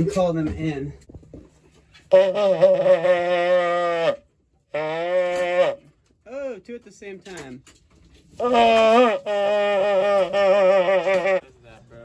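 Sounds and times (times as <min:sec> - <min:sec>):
trumpet notes: 0:02.0 - 0:06.0, 0:08.4 - 0:11.4.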